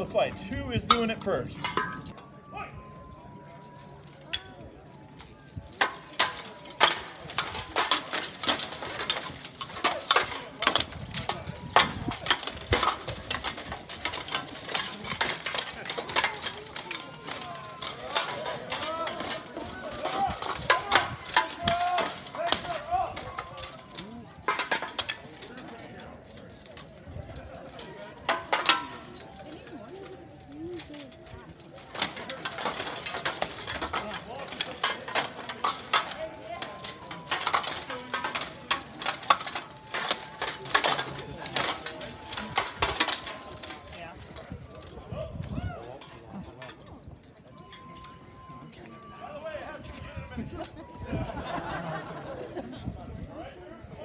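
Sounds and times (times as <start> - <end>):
steel weapons clanging on armour: 0.0 - 2.3, 3.6 - 52.9.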